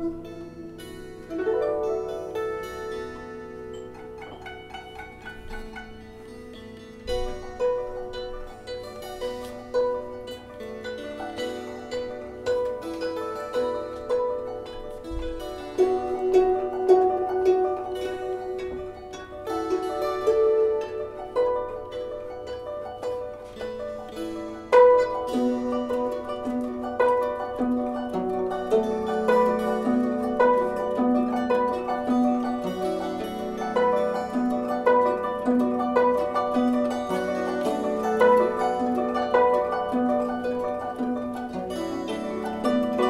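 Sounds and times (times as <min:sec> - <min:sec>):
kantele plucking: 0:00.0 - 0:43.0
mandolin plucking: 0:00.0 - 0:43.0
zither plucking: 0:00.0 - 0:43.0.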